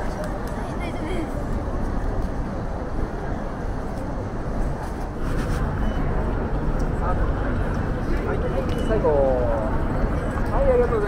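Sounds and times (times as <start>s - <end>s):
crowd chatter: 0.0s - 11.0s
road traffic rumble: 0.0s - 11.0s.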